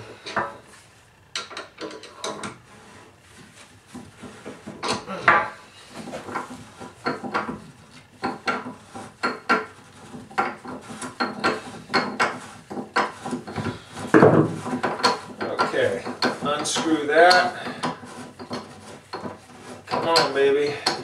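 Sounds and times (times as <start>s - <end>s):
metal scraping and clinking: 0.2s - 21.0s.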